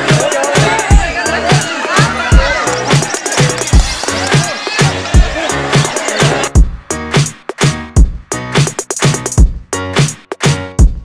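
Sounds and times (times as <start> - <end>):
dance music with heavy drum beat: 0.0 - 11.0.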